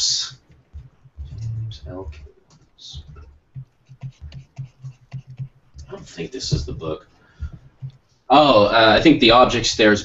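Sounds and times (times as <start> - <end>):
pen scratching on paper: 2.9 - 8.0.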